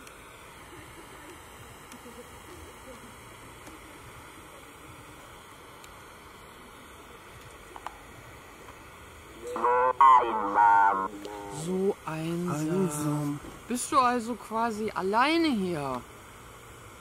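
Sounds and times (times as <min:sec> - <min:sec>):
faint electronic hiss: 0:00.0 - 0:17.0
synthetic voice speaking: 0:09.6 - 0:11.9.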